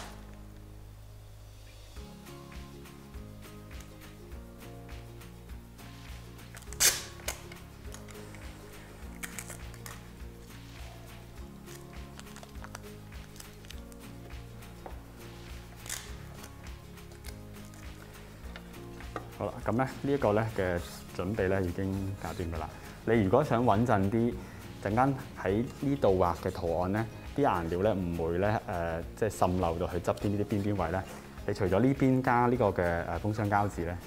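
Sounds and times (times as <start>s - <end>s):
packing tape pulled off roll: 0.0s - 0.4s, 6.4s - 10.2s, 11.6s - 14.4s, 15.5s - 18.2s
tape ripping: 0.0s - 0.4s, 6.4s - 10.2s, 11.6s - 14.4s, 15.6s - 18.2s
soft background music: 0.0s - 34.0s.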